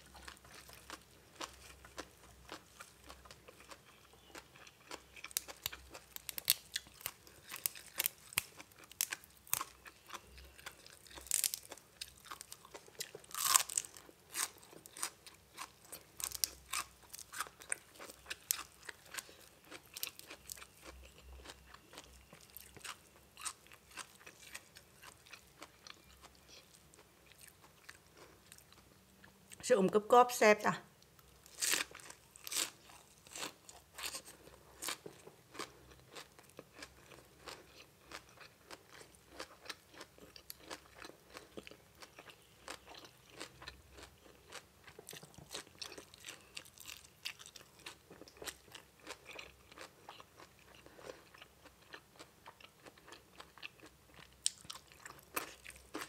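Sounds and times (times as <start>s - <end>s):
chewing crisp raw greens: 0.0s - 29.6s, 31.1s - 56.0s.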